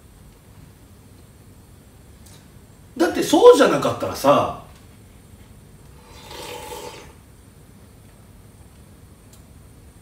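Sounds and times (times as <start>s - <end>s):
person slurping noodles: 6.0s - 7.2s.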